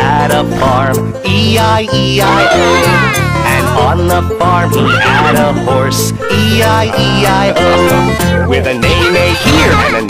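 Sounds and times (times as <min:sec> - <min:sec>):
children's song with bouncy backing: 0:00.0 - 0:10.0
cartoon horse whinny: 0:04.8 - 0:05.6.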